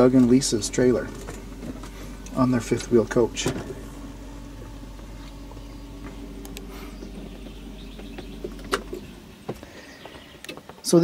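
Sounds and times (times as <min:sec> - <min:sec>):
truck cab mechanical hum: 0:00.0 - 0:11.0
light clicks and knocks: 0:06.0 - 0:10.9.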